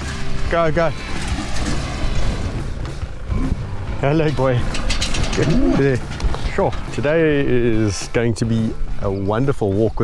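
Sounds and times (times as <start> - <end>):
truck engine rumbling: 0.0 - 9.9.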